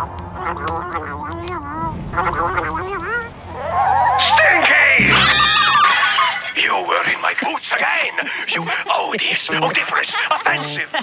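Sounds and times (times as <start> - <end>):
noisy crash: 1.8 - 7.0.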